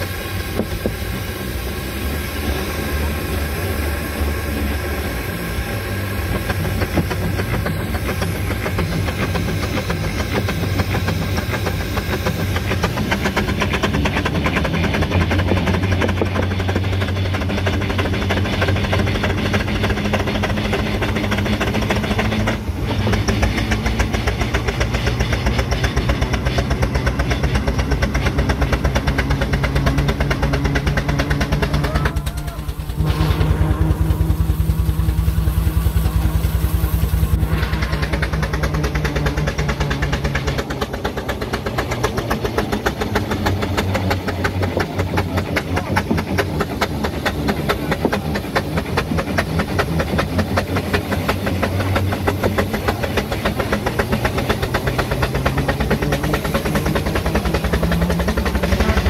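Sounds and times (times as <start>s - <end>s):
engine clatter: 0.0s - 59.0s
steam wagon exhaust beat: 0.0s - 59.0s
low hum: 26.7s - 45.0s.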